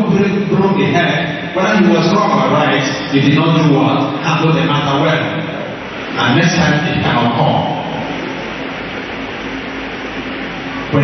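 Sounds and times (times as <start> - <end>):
electric fans whooshing: 0.0 - 11.0.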